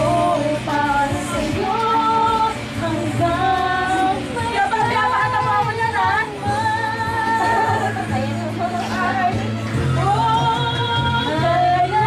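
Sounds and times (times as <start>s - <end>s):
musical accompaniment: 0.0s - 12.0s
woman singing: 0.0s - 12.0s.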